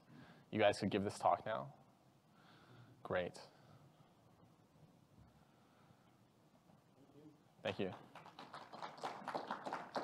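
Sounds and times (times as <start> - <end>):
sparse applause: 8.1 - 10.0.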